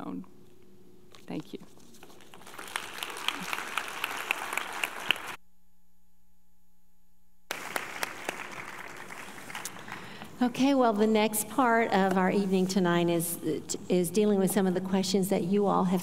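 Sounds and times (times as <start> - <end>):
audience applauding: 2.3 - 5.4, 7.5 - 10.4.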